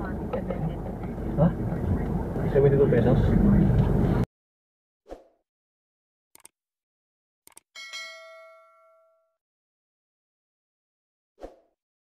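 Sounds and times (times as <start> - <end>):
bell chime ding: 7.8 - 9.4.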